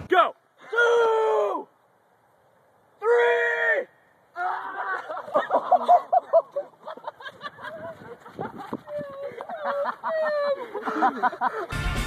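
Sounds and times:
young man yelling: 0:00.0 - 0:01.7, 0:03.0 - 0:04.8.

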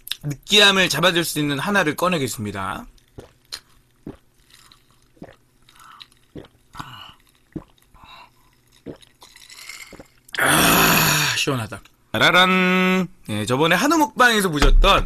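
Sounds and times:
man gulping drink: 0:03.0 - 0:11.2.

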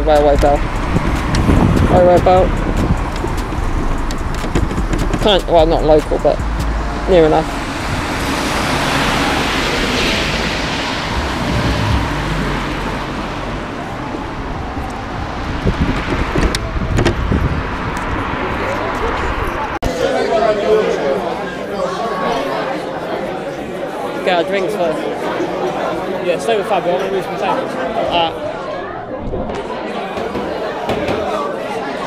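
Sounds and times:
traffic rumble: 0:00.0 - 0:21.4
indoor crowd chatter: 0:00.0 - 0:32.0
wind on microphone: 0:00.3 - 0:19.8.

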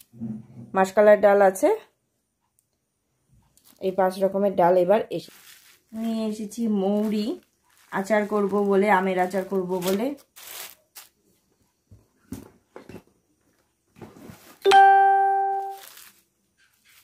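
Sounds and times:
plastic bags rustling: 0:03.6 - 0:04.2, 0:04.8 - 0:11.4, 0:13.9 - 0:14.7, 0:15.5 - 0:17.0
bell-like ding: 0:14.7 - 0:15.8.

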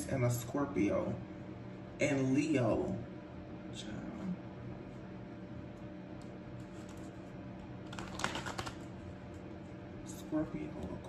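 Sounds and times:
space heater fan hum: 0:00.0 - 0:11.0.

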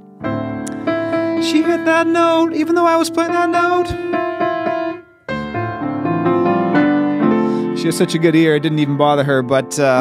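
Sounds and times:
piano playing chords and melody: 0:00.0 - 0:10.0.

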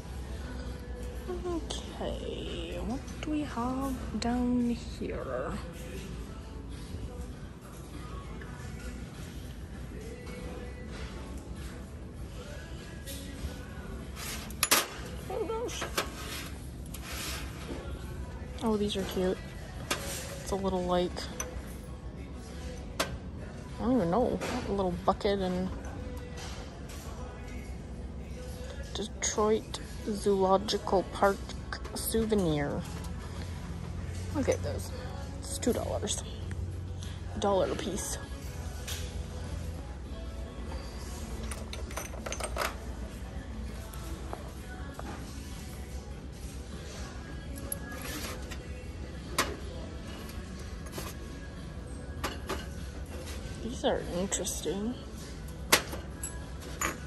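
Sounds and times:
faint background music: 0:00.0 - 0:57.0.

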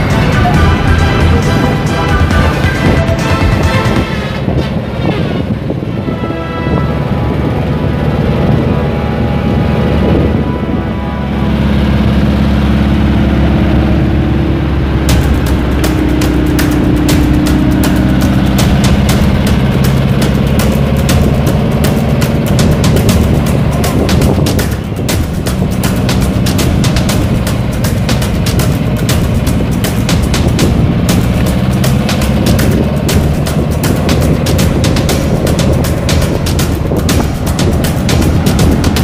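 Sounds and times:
car engine running: 0:00.0 - 0:06.1, 0:06.9 - 0:39.0
background music: 0:00.0 - 0:39.0
road noise: 0:00.0 - 0:39.0.

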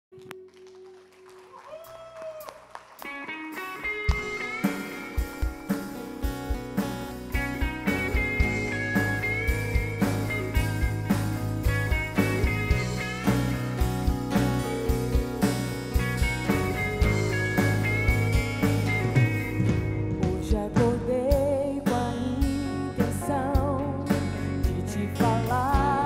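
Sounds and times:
steady drum beat: 0:04.1 - 0:22.1.

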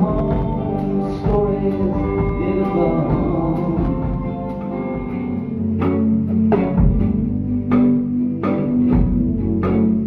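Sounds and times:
live band music: 0:00.0 - 0:10.0.

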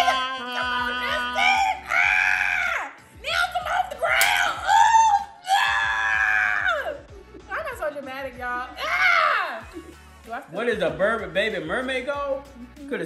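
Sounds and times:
person screaming high-pitched: 0:00.0 - 0:02.9, 0:04.4 - 0:07.0, 0:08.8 - 0:09.6.

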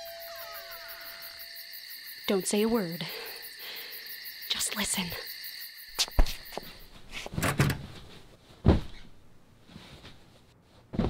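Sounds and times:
crickets chirping: 0:00.0 - 0:07.0.

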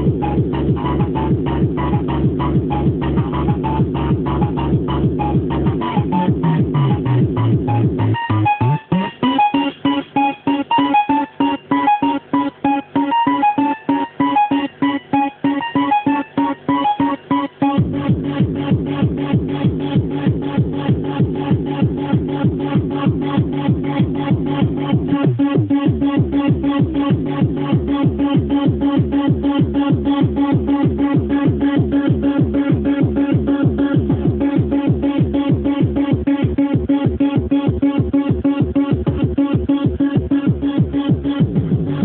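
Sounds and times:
kick drum: 0:00.0 - 0:08.2, 0:17.8 - 0:42.0
low synth bass: 0:00.0 - 0:42.0
synth riff: 0:00.0 - 0:42.0.

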